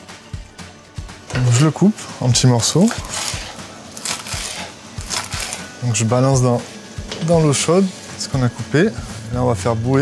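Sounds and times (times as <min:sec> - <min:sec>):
knife chopping leaves on board: 0:02.8 - 0:05.8.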